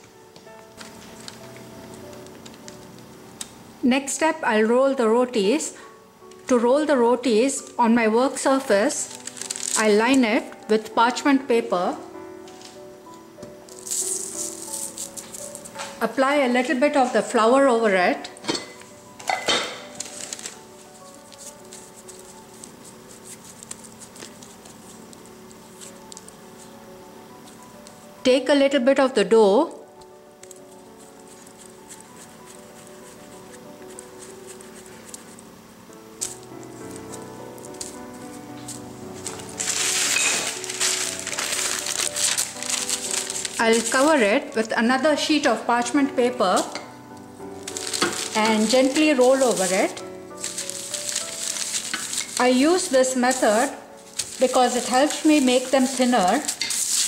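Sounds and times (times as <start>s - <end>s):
soft background music: 0.0s - 57.0s
parchment paper rustling: 0.4s - 3.5s, 7.6s - 11.2s, 13.5s - 17.4s, 18.8s - 28.2s, 30.0s - 57.0s
flour sprinkled onto paper: 47.6s - 57.0s.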